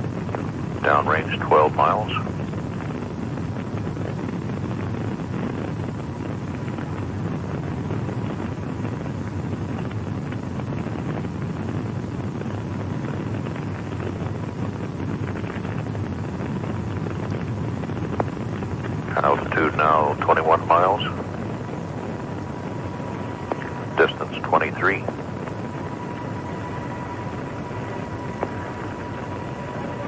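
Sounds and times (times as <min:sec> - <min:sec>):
rocket engines rumbling: 0:00.0 - 0:30.0.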